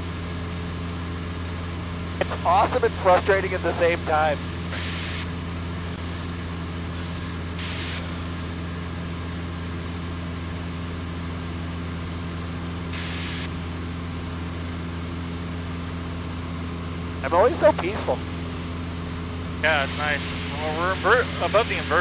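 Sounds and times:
propeller engine droning: 0.0s - 22.0s.

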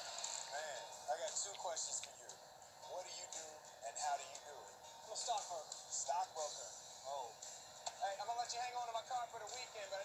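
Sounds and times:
tinny music through small speaker: 0.0s - 10.0s.

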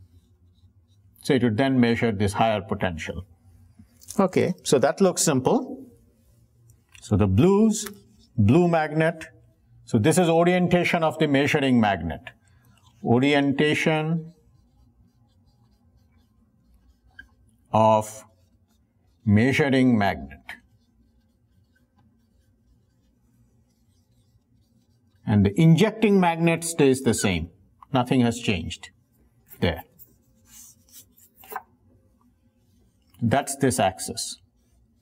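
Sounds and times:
marker scratching on whiteboard: 0.0s - 1.2s, 10.7s - 27.5s, 28.4s - 35.0s
low room hum: 0.0s - 35.0s.

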